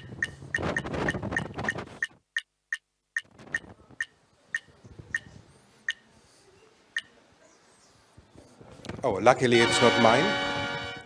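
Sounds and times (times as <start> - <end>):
spinner wheel ticking: 0.0 - 3.3.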